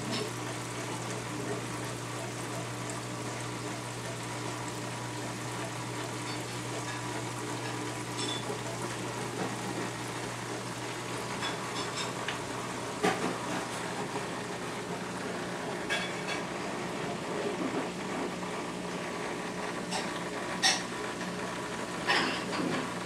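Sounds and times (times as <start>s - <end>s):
low pump hum: 0.0s - 20.4s.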